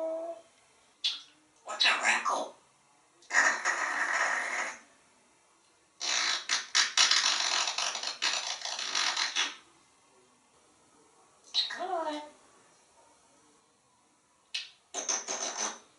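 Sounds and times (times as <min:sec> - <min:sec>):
parrot making cracking sounds: 0:06.0 - 0:09.6, 0:14.5 - 0:15.8.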